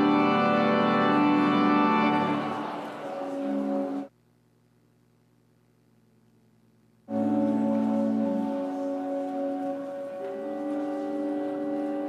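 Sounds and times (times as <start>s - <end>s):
church organ chord: 0.0s - 4.1s, 7.1s - 12.0s
faint low hum: 0.0s - 12.0s.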